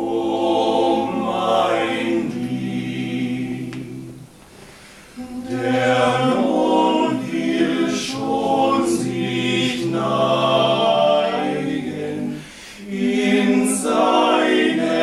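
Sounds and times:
male vocal quartet singing: 0:00.0 - 0:15.0.

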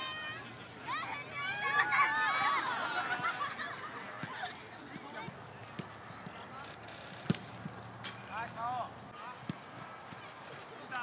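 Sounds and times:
footballs being kicked: 0:04.1 - 0:06.4, 0:07.2 - 0:07.8.

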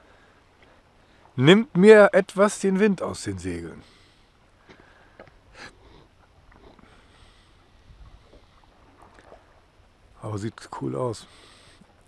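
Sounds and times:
water swishing along hull: 0:00.0 - 0:12.0.

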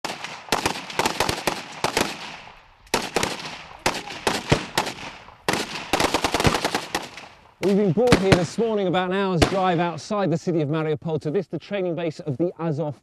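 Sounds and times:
rifle gunfire bursts: 0:00.0 - 0:08.8, 0:09.4 - 0:09.9.

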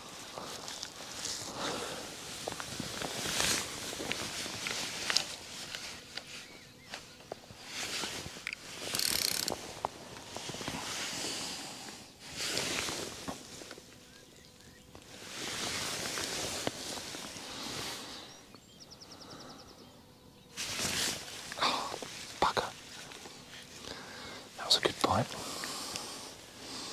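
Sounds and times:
rustling noise: 0:00.0 - 0:14.0, 0:14.9 - 0:18.3, 0:20.5 - 0:23.8
fishing reel ticking: 0:08.4 - 0:09.6
sharp clicks: 0:08.4 - 0:09.6.

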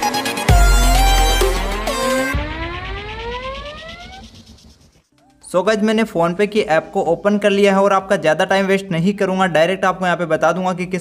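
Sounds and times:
synth tones sweeping upward: 0:00.1 - 0:08.0.

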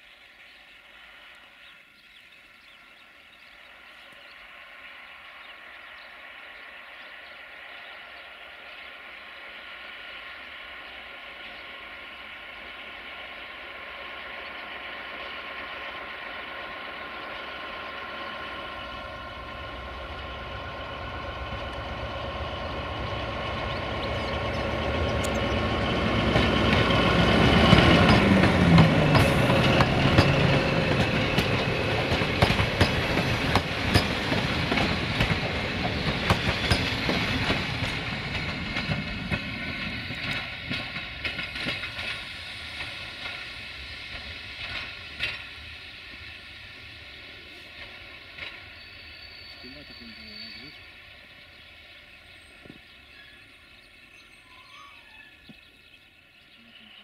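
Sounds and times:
locomotive engine passing: 0:00.0 - 0:57.0
train wheels clicking on rail joints: 0:09.1 - 0:54.0.

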